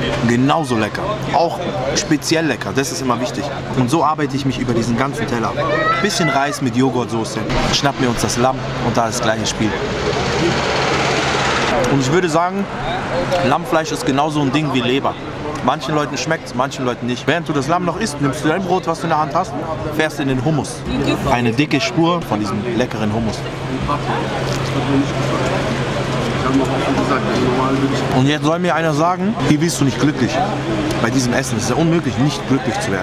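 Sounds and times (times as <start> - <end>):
faint background voices: 0.0 - 33.0
traffic noise: 0.0 - 33.0
van driving past: 7.4 - 15.4.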